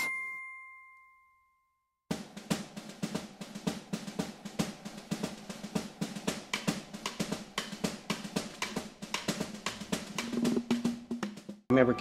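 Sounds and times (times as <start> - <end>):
bell-like ding: 0.0 - 1.7.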